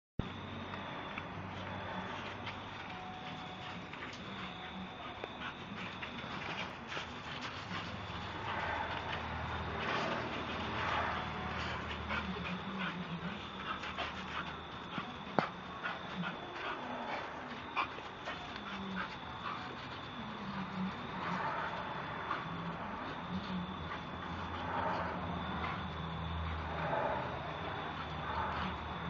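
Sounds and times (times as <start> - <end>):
dog panting and whimpering: 2.1 - 29.0.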